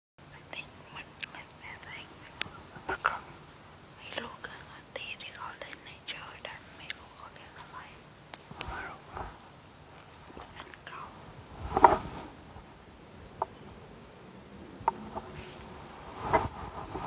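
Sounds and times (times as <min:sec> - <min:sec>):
person whispering: 0:00.2 - 0:03.3, 0:04.0 - 0:08.0, 0:08.6 - 0:09.1, 0:10.4 - 0:11.2.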